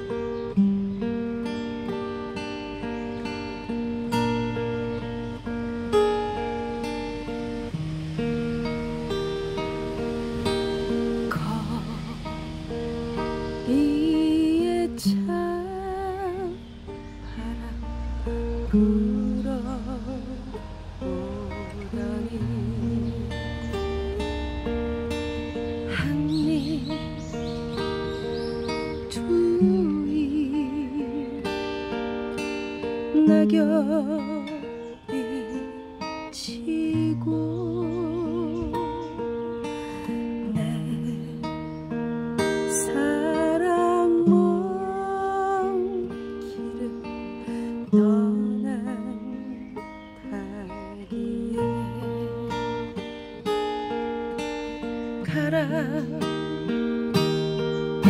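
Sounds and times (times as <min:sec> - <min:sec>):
acoustic guitar strummed: 0:00.0 - 0:58.0
woman singing: 0:10.4 - 0:24.5, 0:25.8 - 0:54.0, 0:55.1 - 0:58.0
woman singing long note: 0:11.3 - 0:12.5, 0:17.4 - 0:23.4.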